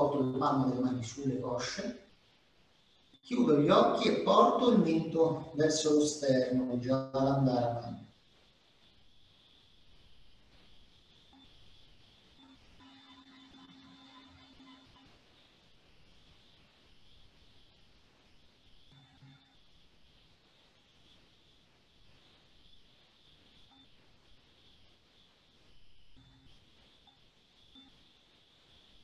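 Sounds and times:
steady hiss: 0.0s - 29.0s.

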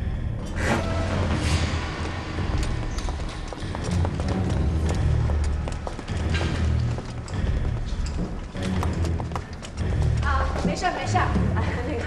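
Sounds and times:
boot footsteps on stone floor: 2.4s - 11.4s.

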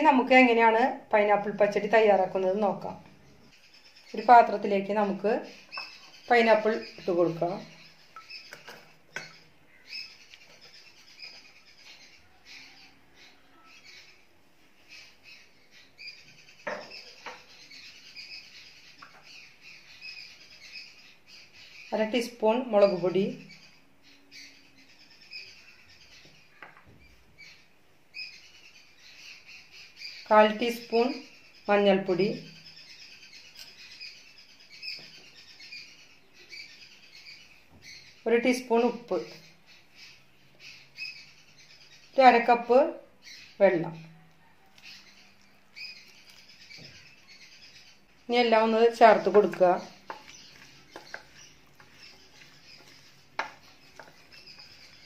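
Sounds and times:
small birds chirping: 0.0s - 55.0s.

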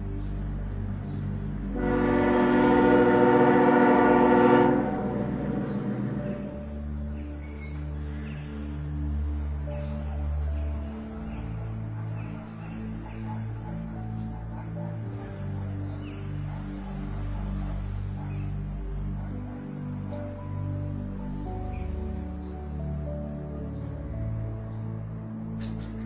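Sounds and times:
low sustained chords: 0.0s - 26.0s
train whistle blast: 1.7s - 6.6s.

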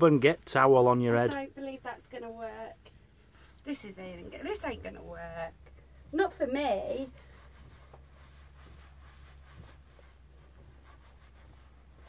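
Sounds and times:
towel rubbing hair: 1.6s - 12.0s
low hum: 3.2s - 9.6s.

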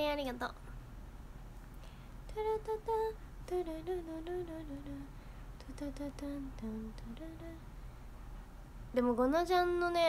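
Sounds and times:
young woman humming a tune: 2.3s - 7.6s.

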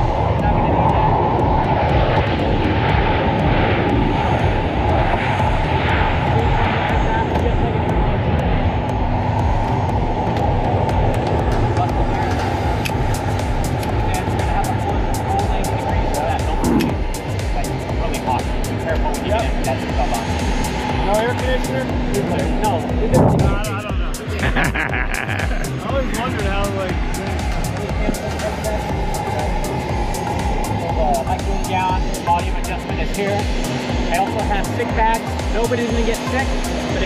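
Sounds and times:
aircraft engine noise: 0.0s - 37.0s
steady hum: 0.0s - 37.0s.

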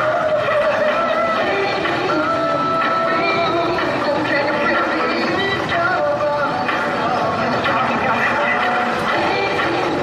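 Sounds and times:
pop dance music with vocals: 0.0s - 10.0s.

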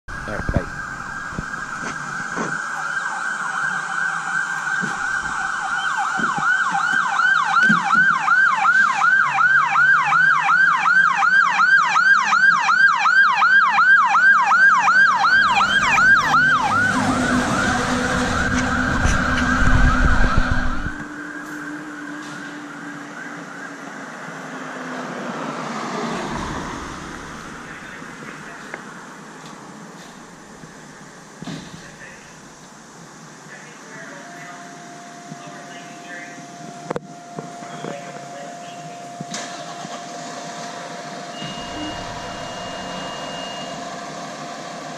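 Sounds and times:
fire engine siren: 0.1s - 28.8s, 33.8s - 44.9s
truck engine passing: 15.0s - 21.0s, 24.4s - 29.2s, 39.4s - 44.9s.

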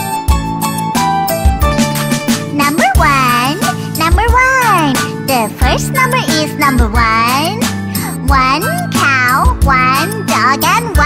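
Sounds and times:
children's song backing music: 0.0s - 11.0s
cartoon voice imitating animal calls: 2.6s - 4.8s.

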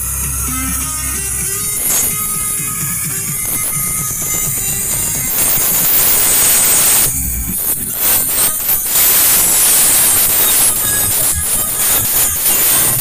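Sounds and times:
pop music over sound system: 0.0s - 13.0s
steady hiss: 0.0s - 13.0s.

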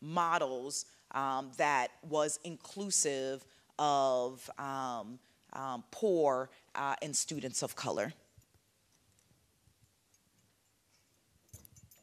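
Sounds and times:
woman speaking: 0.0s - 8.2s.

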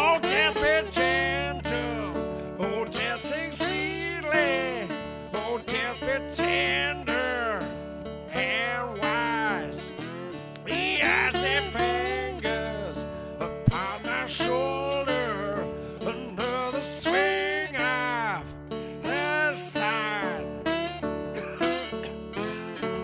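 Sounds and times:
man singing blues: 0.0s - 20.7s, 21.4s - 22.8s
acoustic guitar: 0.0s - 23.0s.

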